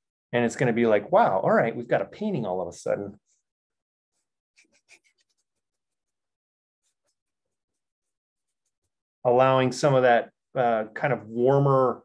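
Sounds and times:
brush strokes scratching: 0:04.1 - 0:09.0.

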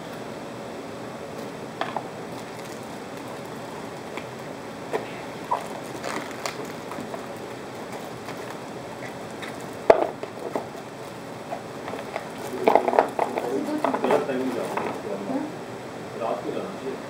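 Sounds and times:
plastic bag crinkling: 0:02.2 - 0:04.2, 0:04.9 - 0:15.0.

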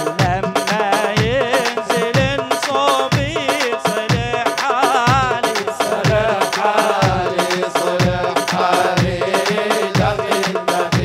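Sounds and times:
double-headed drums beaten: 0:00.0 - 0:11.0.

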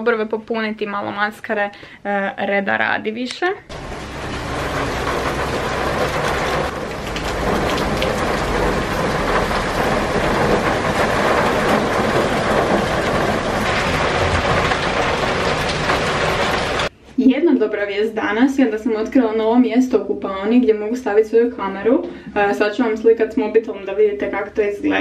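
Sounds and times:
heavy rain falling: 0:03.7 - 0:16.9.

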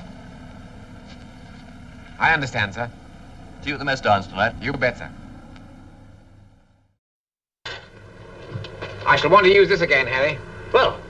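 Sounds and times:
old film soundtrack rumble and hiss: 0:00.0 - 0:06.9, 0:07.7 - 0:11.0.

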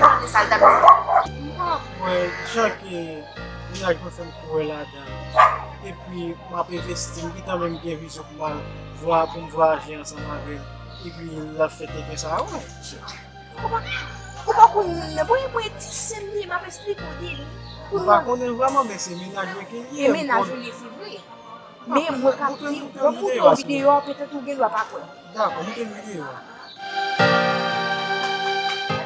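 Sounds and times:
music with steady bass line: 0:00.0 - 0:04.0
background music with bass line: 0:00.0 - 0:22.0
person's voice gliding in pitch: 0:18.8 - 0:20.7.

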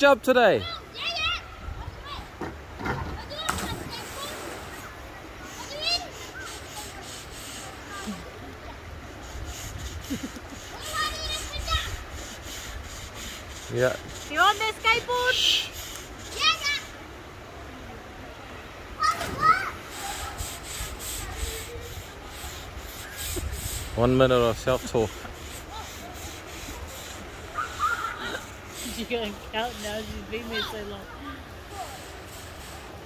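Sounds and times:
faint distant voices: 0:00.9 - 0:33.0.

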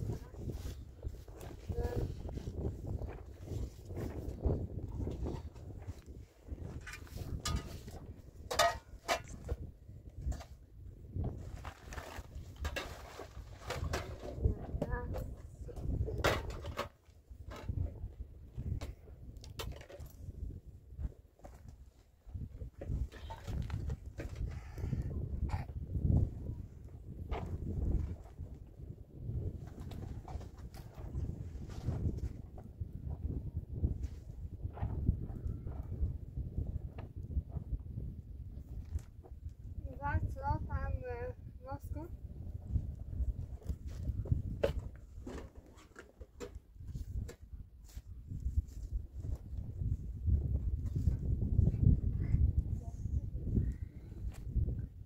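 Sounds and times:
household objects knocking and clattering: 0:07.4 - 0:09.6, 0:16.1 - 0:16.9.

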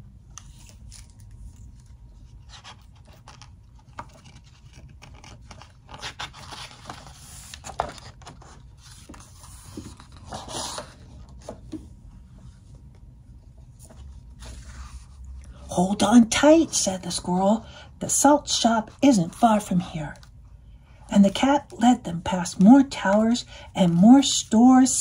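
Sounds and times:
faint room hum: 0:00.0 - 0:25.0
book page turning: 0:00.3 - 0:11.8, 0:13.6 - 0:15.4.

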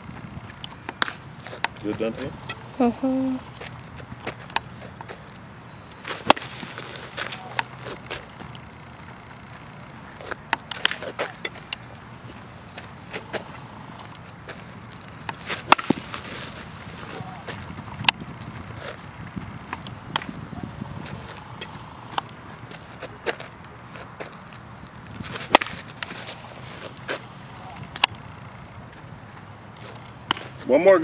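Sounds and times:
outdoor background noise: 0:00.0 - 0:31.0
ball cracking into leather glove: 0:00.5 - 0:02.0, 0:06.0 - 0:20.4, 0:21.0 - 0:28.5, 0:29.8 - 0:30.7.

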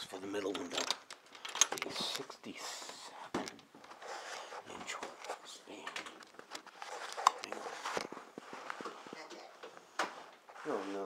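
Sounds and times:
handling clicks and knocks: 0:00.4 - 0:02.3.

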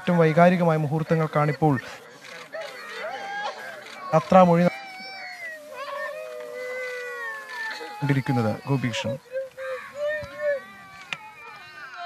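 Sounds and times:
faint voices: 0:00.0 - 0:12.0
woman wailing: 0:04.7 - 0:12.0.

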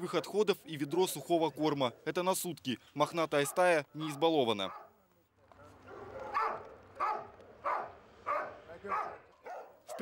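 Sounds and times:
dog barking: 0:03.4 - 0:04.9, 0:05.8 - 0:10.0.

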